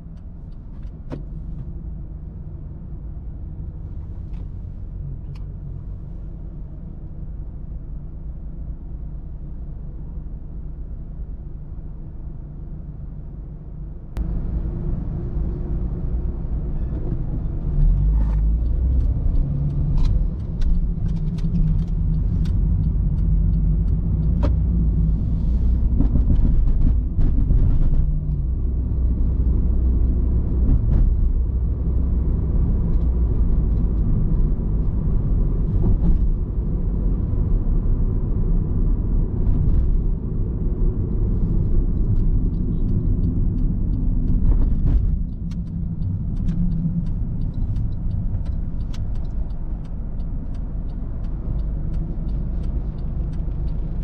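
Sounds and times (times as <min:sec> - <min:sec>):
car engine and tyre rumble: 0:00.0 - 0:54.0
light ticks and taps: 0:42.0 - 0:54.0.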